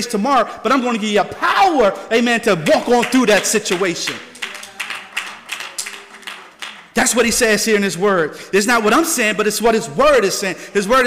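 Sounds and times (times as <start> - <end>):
scattered hand claps: 2.6 - 7.2.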